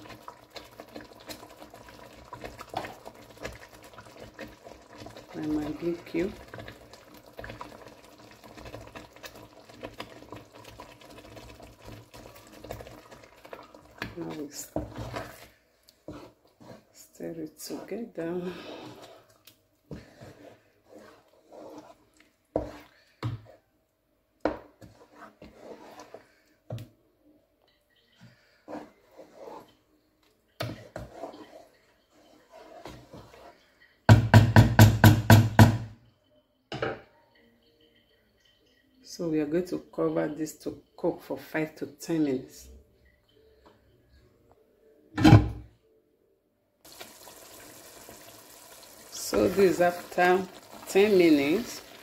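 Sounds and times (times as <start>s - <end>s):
stew bubbling in a pot: 0.0s - 23.7s, 24.4s - 26.8s, 27.9s - 29.9s, 30.6s - 35.8s, 46.8s - 52.0s
spatula knocking pot side: 34.1s - 35.9s.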